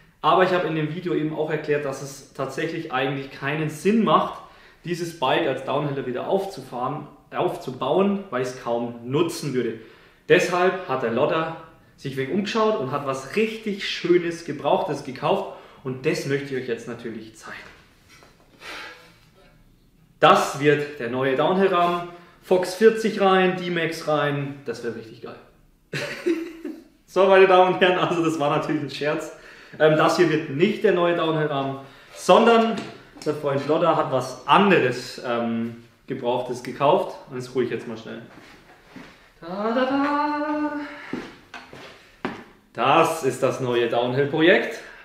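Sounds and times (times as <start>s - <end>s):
man humming: 39.4s - 41.2s.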